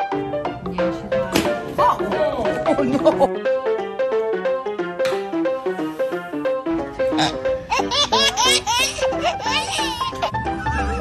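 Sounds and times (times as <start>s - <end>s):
background music: 0.0s - 11.0s
baby laughing: 7.0s - 11.0s.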